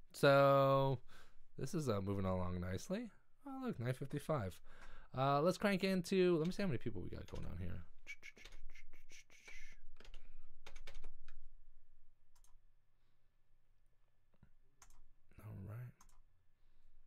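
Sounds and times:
computer keyboard typing: 0:06.4 - 0:07.7, 0:08.4 - 0:08.7, 0:09.5 - 0:11.5, 0:12.3 - 0:12.6, 0:14.8 - 0:15.1.

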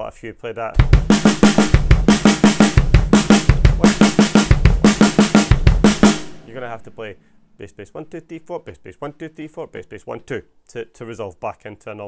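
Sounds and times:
acoustic drum kit playing: 0:00.8 - 0:07.3.

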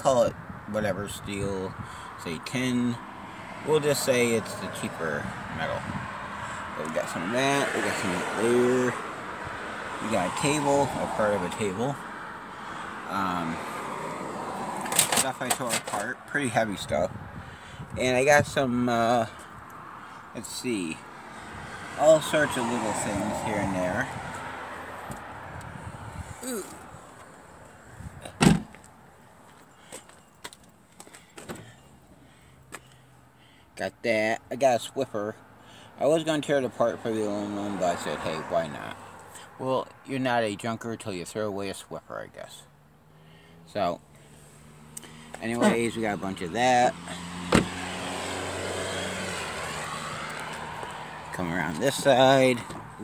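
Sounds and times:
car passing on road: 0:02.8 - 0:33.6, 0:35.3 - 0:39.7, 0:42.6 - 0:53.0
vehicle door shutting: 0:28.2 - 0:28.8, 0:47.4 - 0:48.0.

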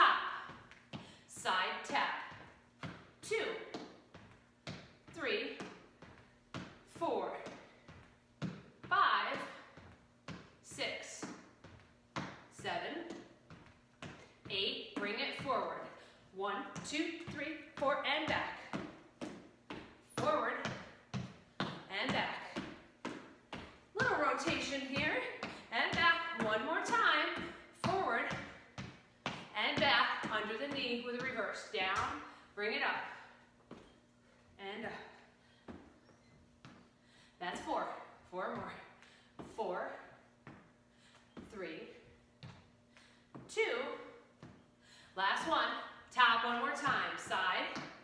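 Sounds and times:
woman speaking: 0:00.0 - 0:00.5, 0:01.3 - 0:02.3, 0:05.2 - 0:05.6, 0:08.9 - 0:09.6, 0:14.5 - 0:18.7, 0:21.9 - 0:22.6, 0:24.0 - 0:28.5, 0:29.5 - 0:33.2, 0:34.6 - 0:35.2, 0:37.4 - 0:38.9, 0:41.5 - 0:42.0.

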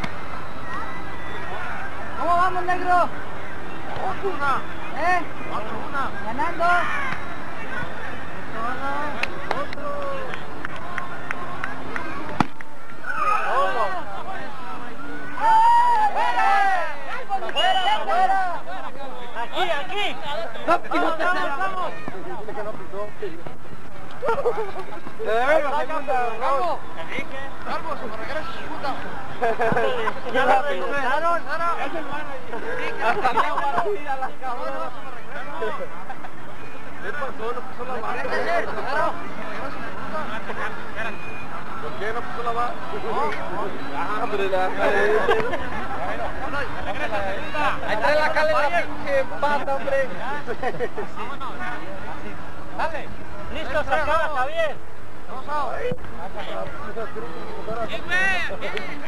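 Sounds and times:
people talking and calling out: 0:00.0 - 0:59.0
people shouting: 0:13.0 - 0:14.0, 0:15.3 - 0:18.6
loud drawn-out yell: 0:13.0 - 0:14.1, 0:15.3 - 0:17.0.

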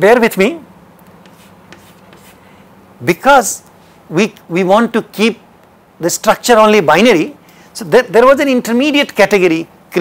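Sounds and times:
chalk writing on chalkboard: 0:01.2 - 0:02.5.

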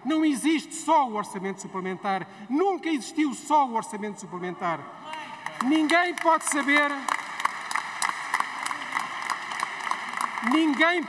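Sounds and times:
scattered applause: 0:05.1 - 0:11.0.

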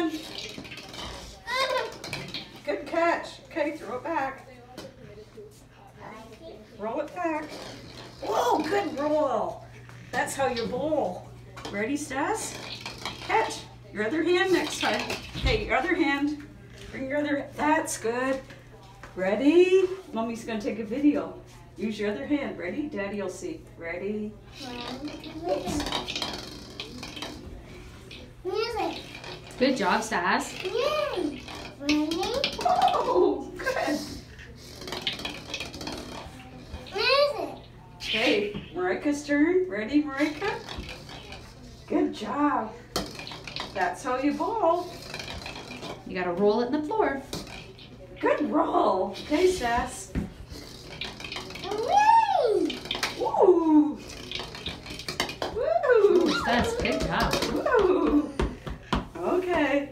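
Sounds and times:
ball rolling on wooden floor: 0:00.0 - 0:05.0, 0:06.9 - 0:21.2, 0:24.6 - 0:51.9, 0:52.6 - 0:59.8
child's high-pitched vocal sound: 0:51.7 - 0:52.7.

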